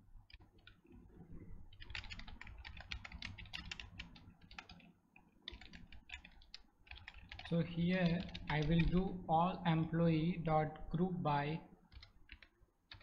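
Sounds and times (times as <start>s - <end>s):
typing on computer keyboard: 0.2s - 1.0s, 1.7s - 9.1s, 11.9s - 13.0s.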